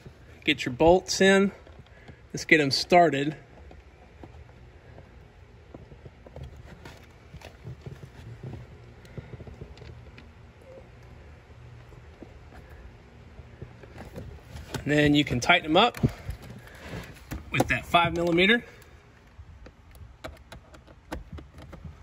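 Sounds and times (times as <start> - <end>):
low steady hum: 0.0 - 22.0
bolts clicking and scraping on plastic: 0.1 - 22.0.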